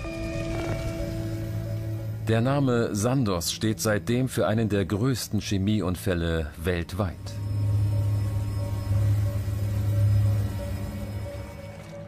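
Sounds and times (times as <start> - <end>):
low rumbling drone: 6.8 - 12.0
faint high sustained tone: 7.1 - 12.0.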